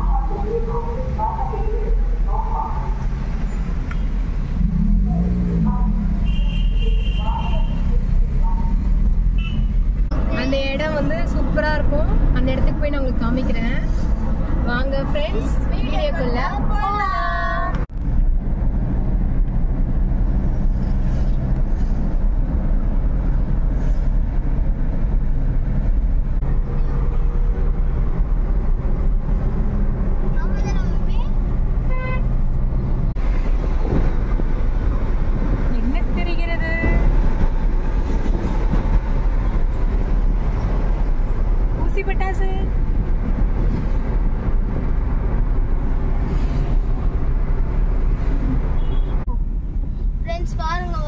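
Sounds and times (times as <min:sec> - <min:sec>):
car engine drone: 0:00.0 - 0:51.0
road rumble: 0:00.0 - 0:51.0
car horn toot: 0:06.2 - 0:07.9, 0:09.4 - 0:09.8, 0:31.9 - 0:32.3, 0:48.8 - 0:49.2.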